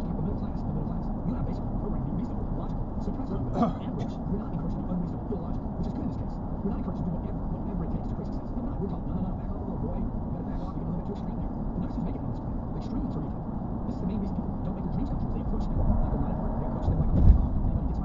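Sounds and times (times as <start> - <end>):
car cabin road noise: 0.0 - 18.0.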